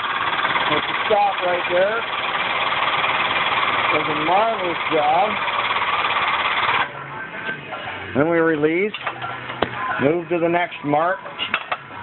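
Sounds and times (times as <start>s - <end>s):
shop press power unit running: 0.0s - 7.2s.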